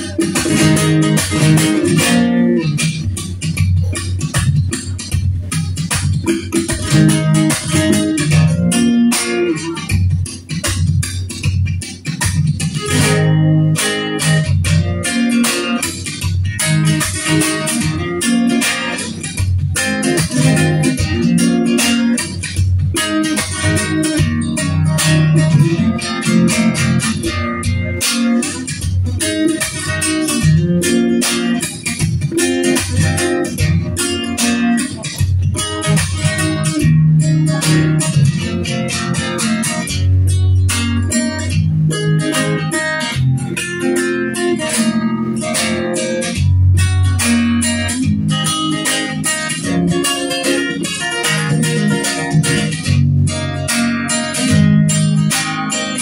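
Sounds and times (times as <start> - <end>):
acoustic guitar plucked: 0.0 - 56.0.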